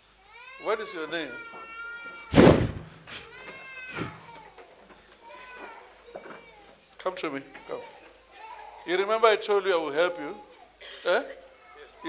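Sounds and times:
person wailing: 3.9s - 4.3s.

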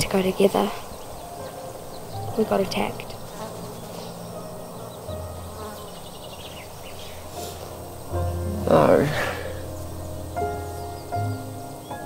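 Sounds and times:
low buzzing drone: 1.2s - 12.0s.

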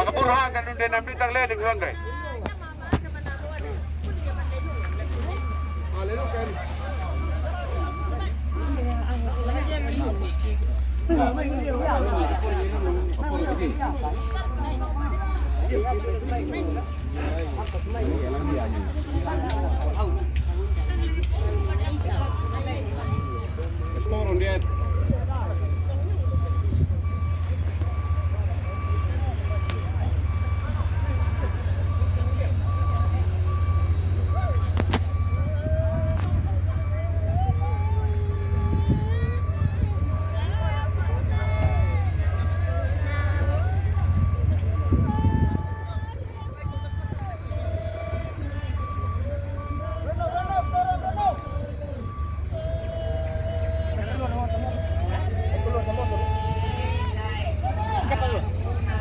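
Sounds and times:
background voices: 0.0s - 59.0s
constant low rumble: 0.0s - 59.0s
truck reversing alarm beeps: 0.0s - 59.0s.

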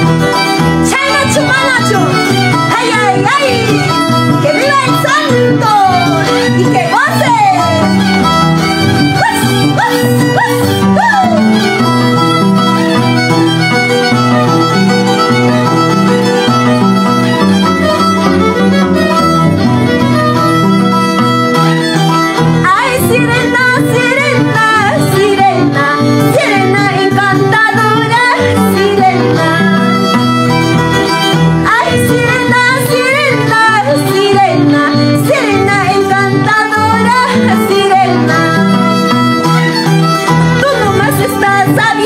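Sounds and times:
harp: 0.0s - 42.0s
violin: 0.0s - 42.0s
woman singing: 0.8s - 7.9s, 9.0s - 11.6s, 22.6s - 30.2s, 31.6s - 38.6s, 40.6s - 42.0s.

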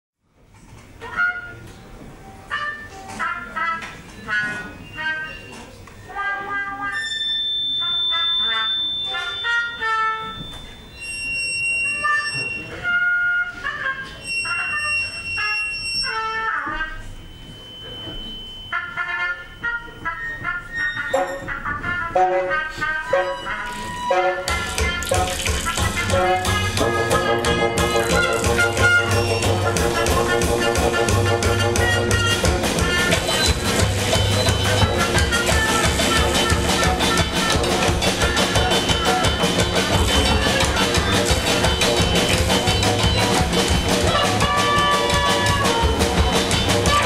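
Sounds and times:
brass phrases: 1.0s - 1.7s, 2.4s - 5.4s, 6.1s - 10.6s, 12.0s - 17.2s, 18.6s - 47.0s
high held brass tones: 2.4s - 47.0s
drums rumbling: 24.4s - 47.0s.

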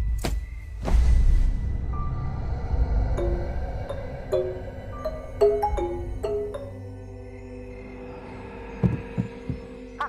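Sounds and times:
steady low drone: 1.6s - 10.0s.

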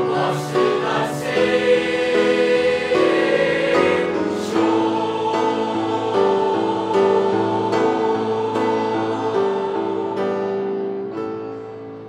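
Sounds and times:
children's choir singing held chords: 0.0s - 11.2s.

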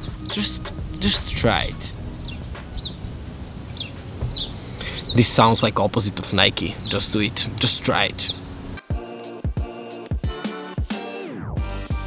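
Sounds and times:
outdoor background hum: 0.0s - 8.8s
small bird chirping: 2.2s - 8.8s.

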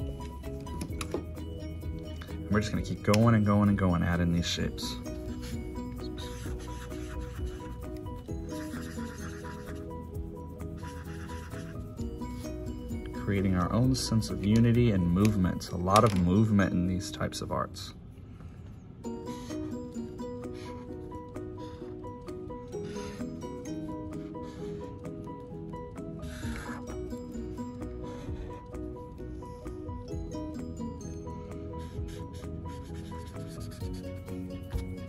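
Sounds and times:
background music melody: 0.0s - 35.0s
marker dabbing on paper: 5.1s - 9.8s, 10.8s - 11.8s, 31.8s - 34.9s.

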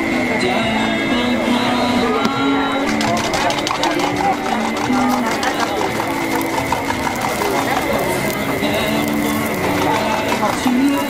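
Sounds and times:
indistinct background voices: 0.0s - 11.0s
spatulas scraping a griddle: 2.9s - 11.0s.

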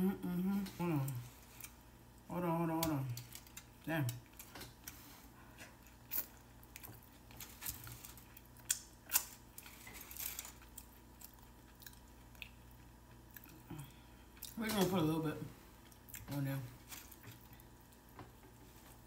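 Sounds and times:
person chewing food: 3.2s - 14.6s, 15.7s - 16.3s, 16.9s - 19.0s.

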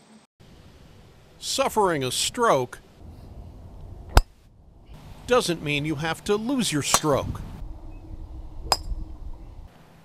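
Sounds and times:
low background rumble: 2.8s - 9.7s
golf club striking ball: 4.0s - 4.4s, 6.9s - 7.2s, 8.6s - 9.2s.

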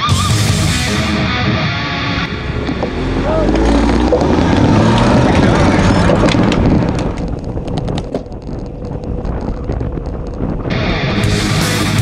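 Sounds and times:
road noise: 0.0s - 12.0s
wind rumble on microphone: 1.2s - 12.0s
cyclists talking: 2.3s - 7.7s.

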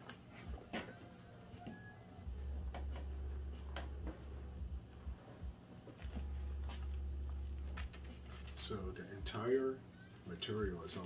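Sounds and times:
low hum: 2.2s - 8.8s.

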